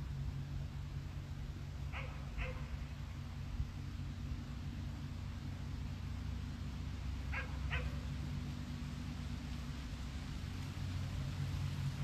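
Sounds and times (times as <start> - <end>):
low steady hum: 0.0 - 12.0
dog yipping: 1.9 - 2.7, 7.3 - 8.0.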